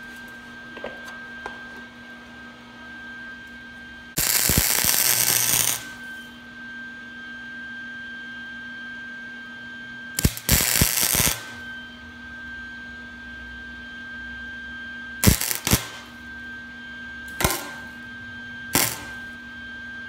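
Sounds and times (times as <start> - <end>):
steady electrical hum: 0.0 - 6.5, 10.2 - 12.4, 15.0 - 19.9
welder arc crackle: 4.1 - 6.2, 10.2 - 11.7, 15.2 - 16.2, 17.3 - 18.1, 18.7 - 19.4.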